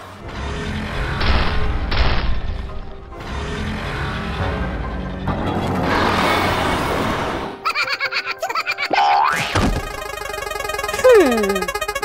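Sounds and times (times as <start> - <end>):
rapid clicks and blips: 9.8 - 12.0.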